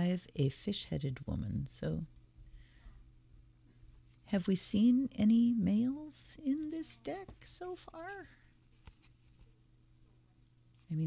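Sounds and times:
soft brushing sound: 6.5s - 10.2s
paper cards rustling on cloth: 6.7s - 9.7s.

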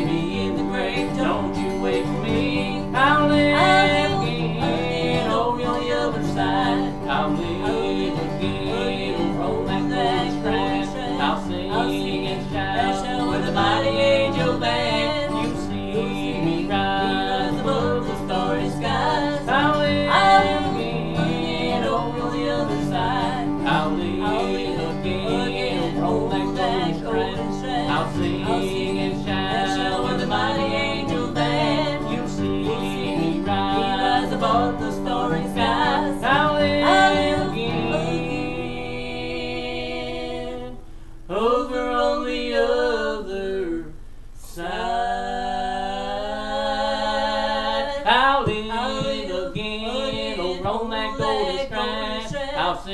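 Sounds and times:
acoustic guitar strummed and picked: 0.0s - 41.2s, 48.1s - 52.8s
woman and man singing harmony: 0.0s - 52.9s.

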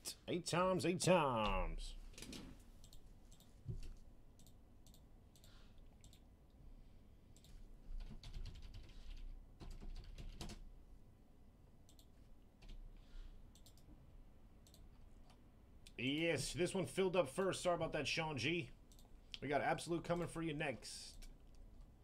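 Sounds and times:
typing on computer keyboard: 7.4s - 10.6s.

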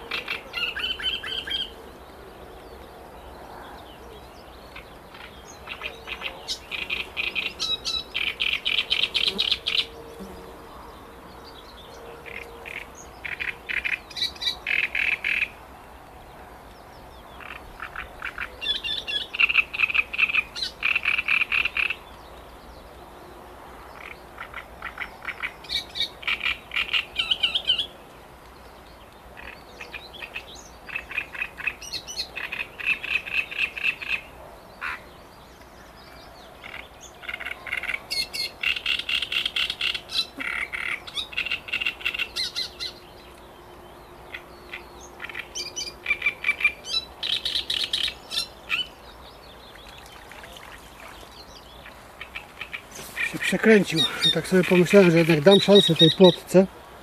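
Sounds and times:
warbler singing: 0.0s - 56.8s.

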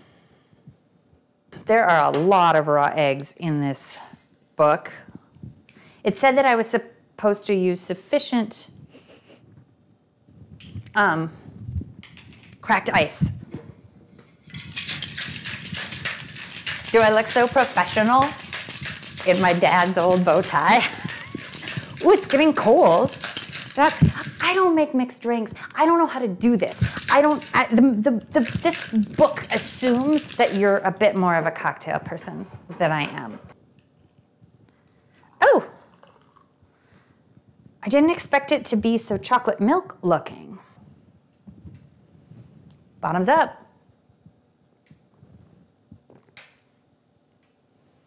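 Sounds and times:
ice rattling in cocktail shaker: 14.4s - 24.6s, 26.6s - 31.0s, 35.8s - 36.5s.

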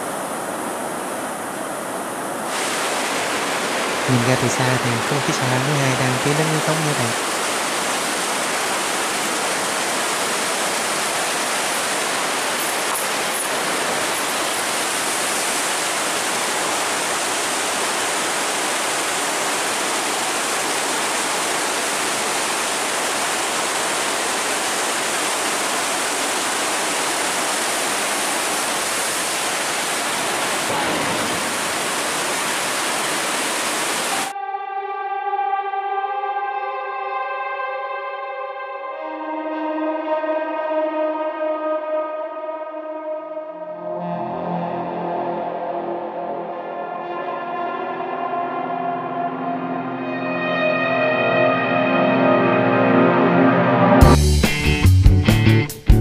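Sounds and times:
water rushing through sluice gate: 0.0s - 34.3s
plucked guitar-like music: 43.9s - 45.5s, 53.9s - 56.0s.

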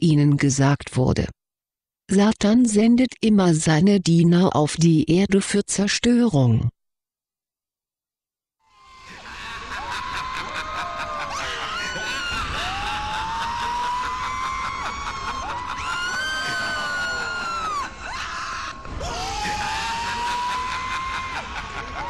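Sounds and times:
people screaming and wailing: 8.7s - 22.0s.

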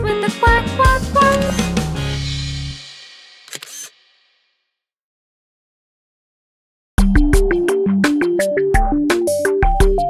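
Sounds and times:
children's song: 0.0s - 1.7s
camera shutter click: 1.2s - 1.7s, 3.5s - 4.0s.

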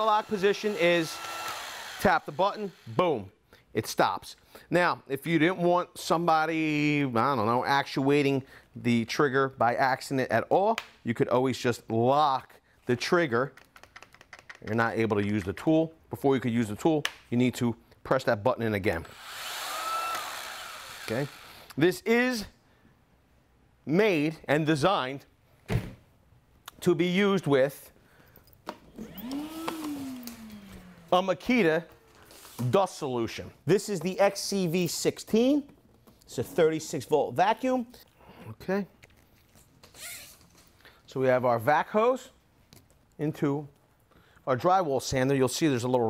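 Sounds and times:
drywall sander motor whirring: 0.0s - 3.2s, 19.0s - 21.8s, 28.9s - 31.6s
hose handling rustle: 31.9s - 33.0s.

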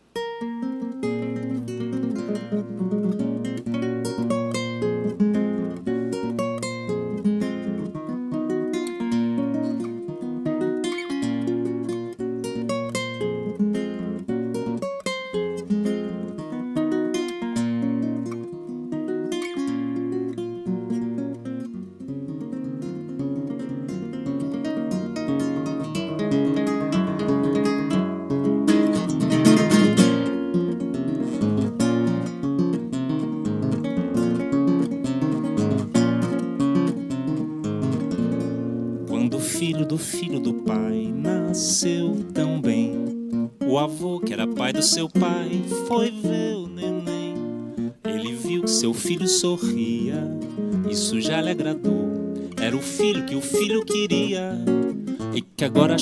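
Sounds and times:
fingerpicked classical guitar: 0.0s - 56.0s.

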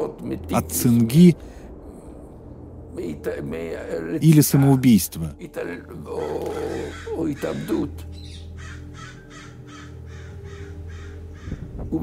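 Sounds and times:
low musical drone: 0.0s - 12.0s
crows cawing: 6.1s - 11.7s.

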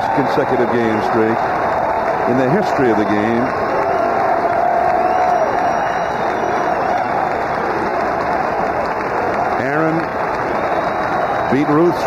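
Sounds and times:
crowd cheering and applauding: 0.0s - 12.0s.

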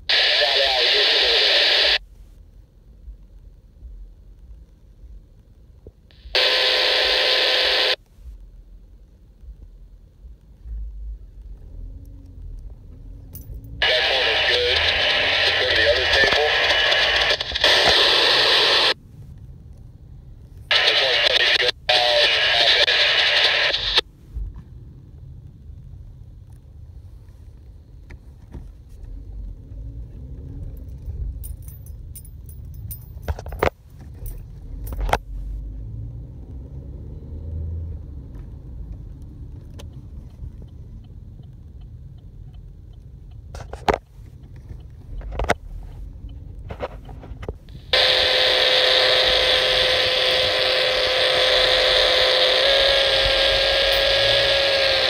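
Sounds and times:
radio voice transmissions: 0.0s - 2.0s, 6.1s - 8.0s, 13.8s - 19.0s, 20.7s - 24.0s, 47.7s - 55.0s
low steady rumble: 0.0s - 55.0s.

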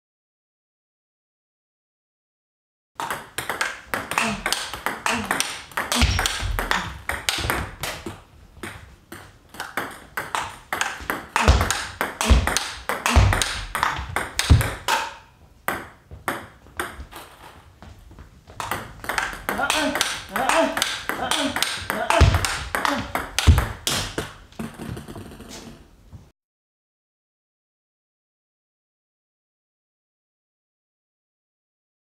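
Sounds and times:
table tennis ball clicking: 3.0s - 17.0s, 18.6s - 25.5s
dull thumps: 10.3s - 15.0s, 18.5s - 25.7s.

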